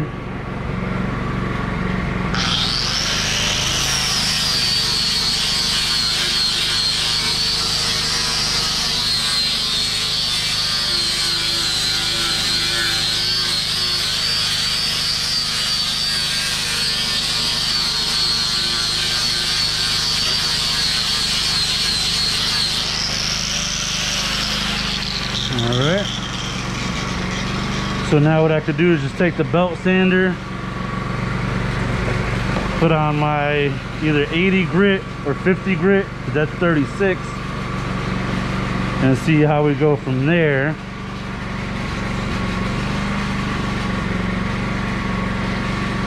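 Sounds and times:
angle grinder grinding wood: 0.0 - 46.0.

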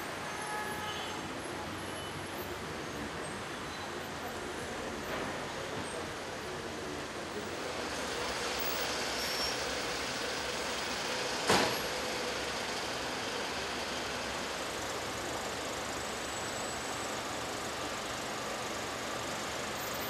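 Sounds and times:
street traffic: 0.0 - 20.0.

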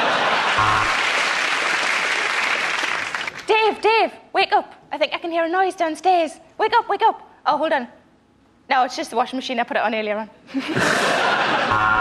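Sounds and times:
audience laughing: 0.0 - 2.7, 10.5 - 12.0
audience applauding: 0.0 - 3.5.

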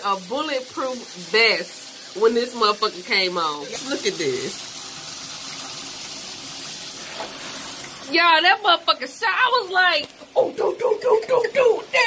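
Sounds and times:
shower water spraying: 0.0 - 12.0.

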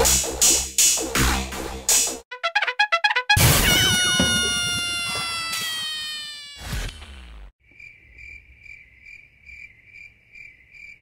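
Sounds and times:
brass music held chord: 2.3 - 3.5
cricket chirping: 7.6 - 11.0.

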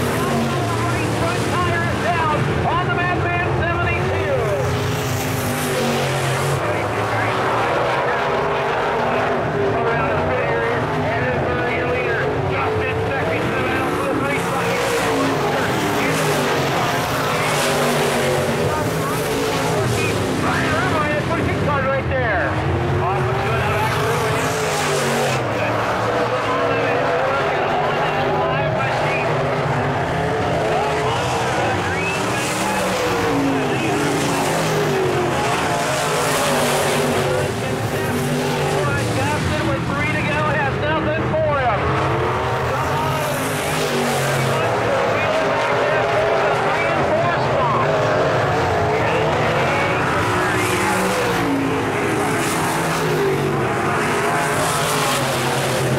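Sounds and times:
race car engines running hard: 0.0 - 55.9.

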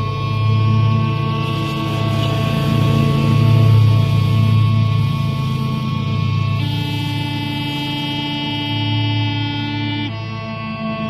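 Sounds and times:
smallpipes playing: 1.1 - 11.0.

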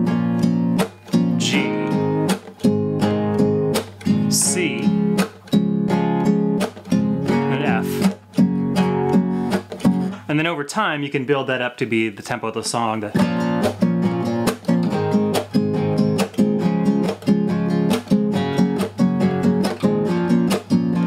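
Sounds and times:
classical guitar strumming: 0.0 - 10.5, 13.1 - 21.0.

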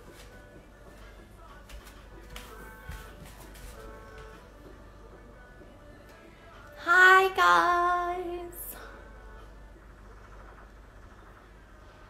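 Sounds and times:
high voice singing: 6.6 - 8.9.

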